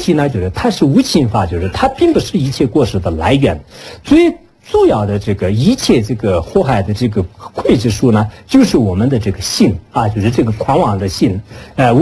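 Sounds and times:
man lecturing: 0.0s - 12.0s.

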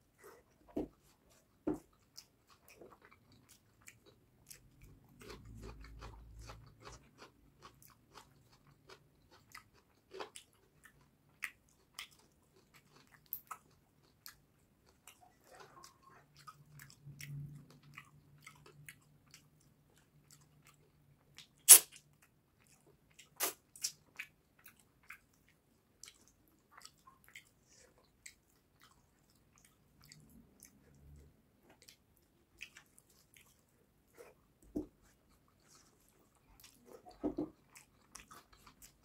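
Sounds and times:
low rumbling chewing: 0.0s - 39.0s
wet mouth clicks and smacks: 21.4s - 22.0s.

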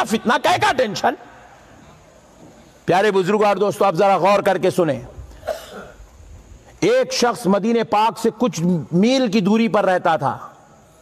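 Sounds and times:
man's amplified speech: 0.0s - 1.4s, 2.8s - 5.2s, 6.8s - 10.6s
faint cough: 5.3s - 6.0s.

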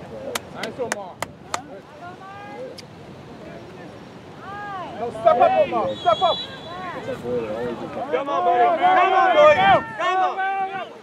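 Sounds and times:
sharp hand claps: 0.3s - 1.7s
distant shouting voices: 4.4s - 11.0s.

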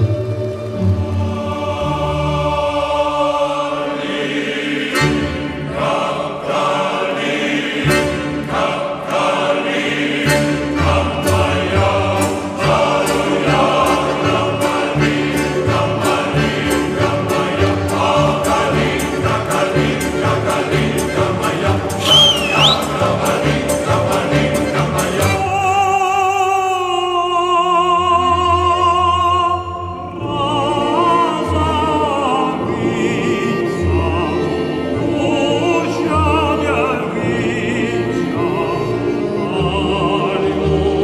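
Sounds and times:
choral singing over fast beat: 1.1s - 25.6s.

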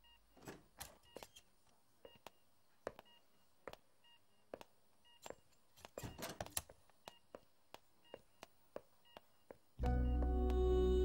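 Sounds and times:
patient monitor beeping softly: 0.0s - 11.0s.

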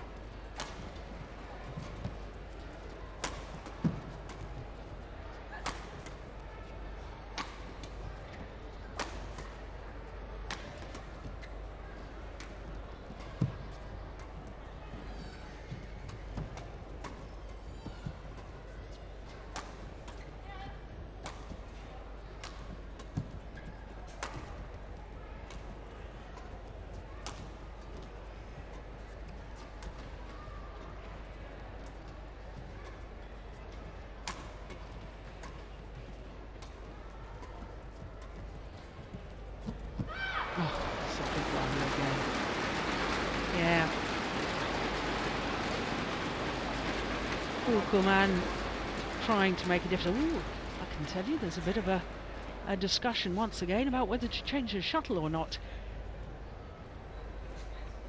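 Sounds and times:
low indoor arena hum: 0.0s - 58.0s
rackets striking shuttlecock: 3.2s - 4.5s, 5.6s - 6.2s, 42.2s - 49.3s
crowd cheering and applause: 40.2s - 52.6s.

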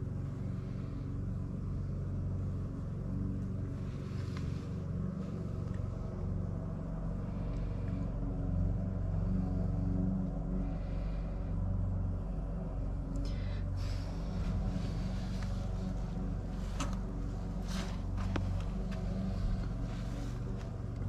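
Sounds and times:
low hum and rumble: 0.0s - 21.0s.

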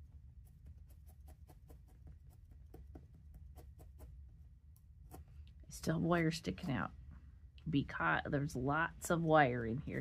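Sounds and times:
felting needle tapping into wool: 0.6s - 4.2s.

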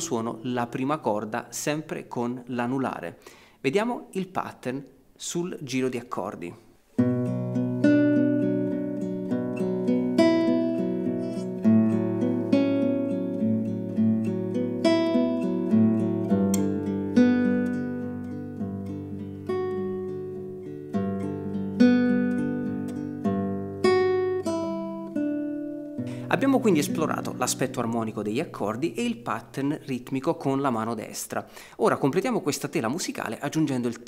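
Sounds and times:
fingerpicked classical guitar arpeggios: 7.0s - 31.3s.

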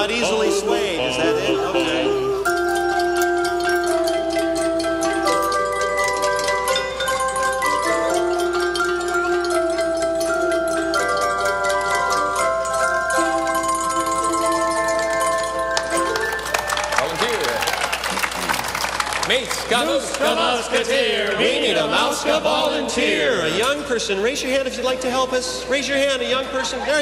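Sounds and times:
crowd voices and cheering: 15.9s - 23.7s.

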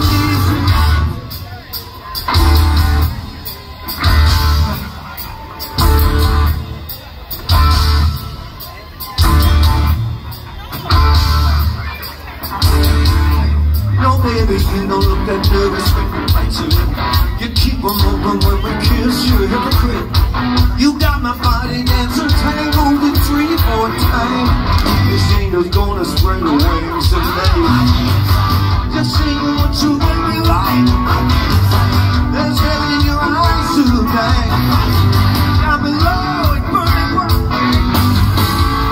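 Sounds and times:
rock band heavy chords: 0.0s - 38.9s.

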